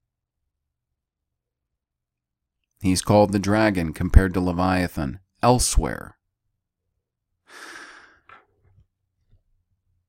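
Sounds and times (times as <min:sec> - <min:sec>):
man breathing into microphone: 0:07.5 - 0:08.4.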